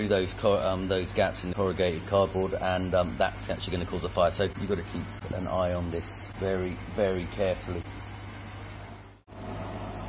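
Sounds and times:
laser cutter humming and hissing: 0.0s - 10.0s.

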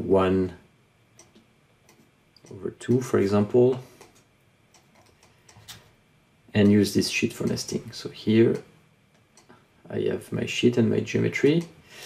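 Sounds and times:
computer mouse click: 3.7s - 5.8s.

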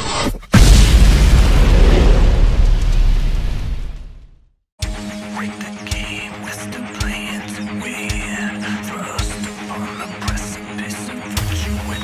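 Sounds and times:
rising whoosh: 0.6s - 4.2s
deep rumbling boom: 0.6s - 4.4s.

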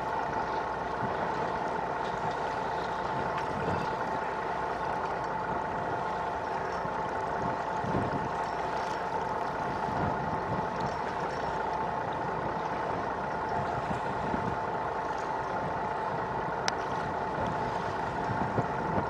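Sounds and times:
boat engine idling: 0.0s - 19.0s
wind and water rushing: 0.0s - 19.0s.

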